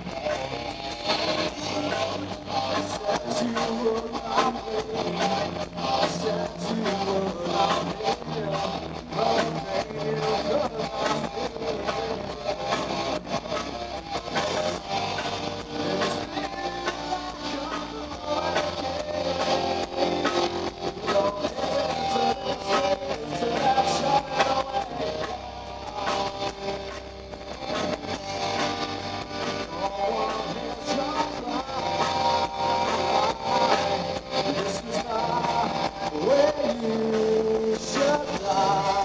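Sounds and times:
bass guitar: 0.0 - 39.0
drum kit beat: 0.0 - 39.0
electric guitars: 0.0 - 39.0.

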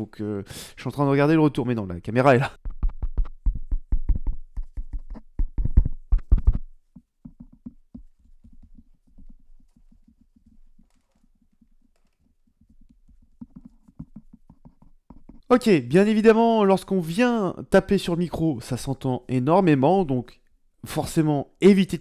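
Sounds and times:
fingers tapping on microphone: 2.6 - 15.5
taps on microphone cable: 2.6 - 15.5.

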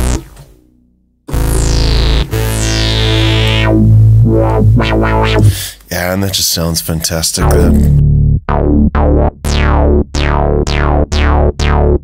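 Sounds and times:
synthesizer notes: 0.0 - 5.6, 7.4 - 12.0.

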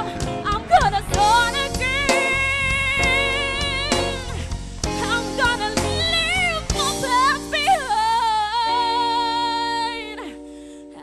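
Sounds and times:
girl singing into a microphone: 0.0 - 11.0
sustained backing chords: 0.0 - 11.0.

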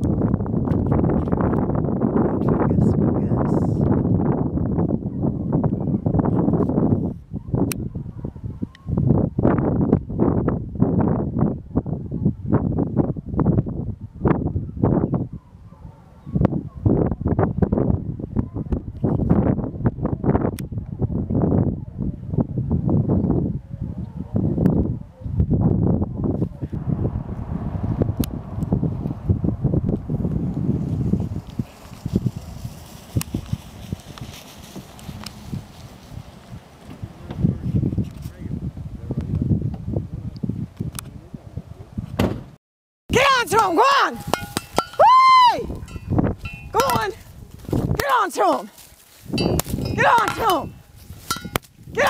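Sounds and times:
wind buffeting microphone: 0.0 - 52.0
distant hounds baying: 7.4 - 9.0, 14.1 - 17.3.

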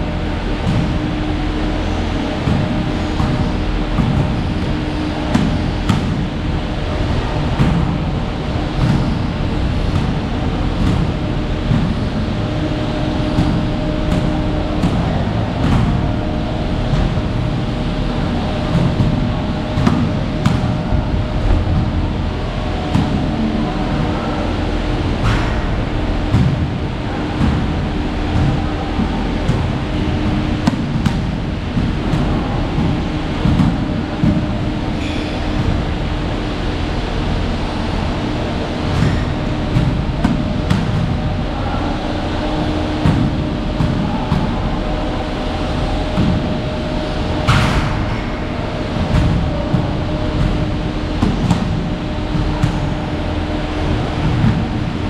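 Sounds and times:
knocks and clanks: 0.0 - 36.7, 37.7 - 55.0
hum: 0.0 - 55.0
low rumble: 0.0 - 55.0.

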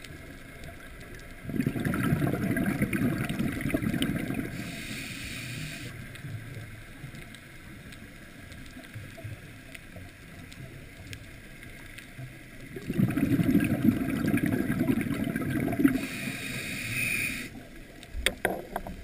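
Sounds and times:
exhaled bubbles burbling underwater: 0.0 - 4.8, 8.8 - 16.3
breath hissing through regulator: 4.4 - 6.0, 15.7 - 17.6.

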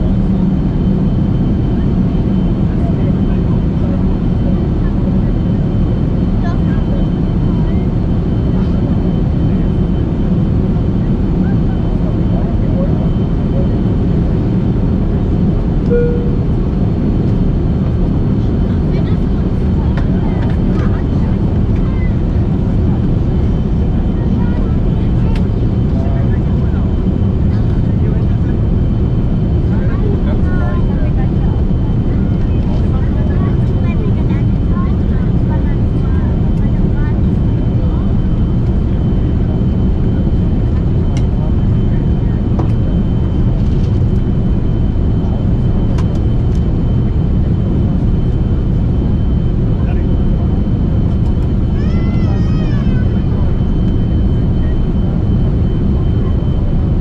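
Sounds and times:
airflow over fuselage: 0.0 - 57.0
jet engines rumbling: 0.0 - 57.0.

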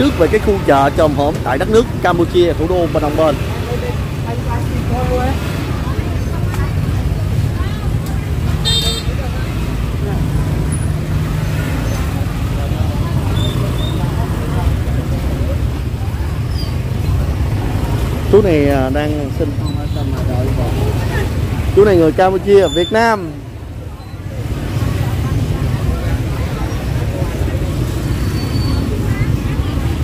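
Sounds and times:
motor scooters passing: 0.0 - 30.0
voices of shoppers and vendors: 0.0 - 30.0.

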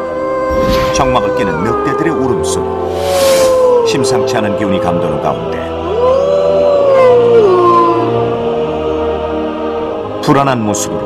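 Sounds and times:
wolf howling: 0.0 - 4.2, 5.8 - 8.6.

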